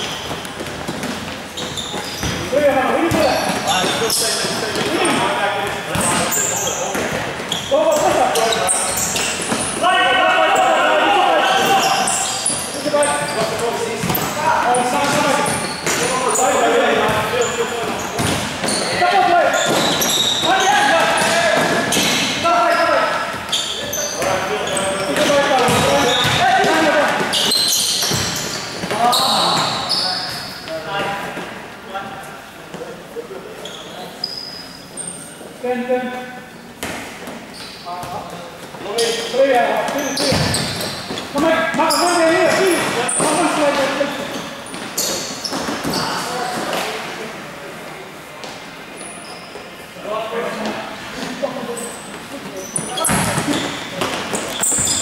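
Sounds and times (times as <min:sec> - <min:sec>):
voices shouting in an echoing hall: 0:01.3 - 0:36.7, 0:37.5 - 0:55.0
short high squeaks: 0:01.5 - 0:02.4, 0:11.4 - 0:13.5, 0:17.4 - 0:20.9, 0:27.3 - 0:30.5, 0:51.7 - 0:55.0
ball kicked and bouncing: 0:25.2 - 0:26.8.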